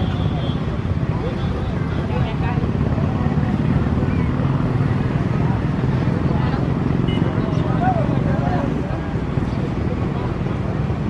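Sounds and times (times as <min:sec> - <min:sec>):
people talking indistinctly: 0:00.0 - 0:11.0.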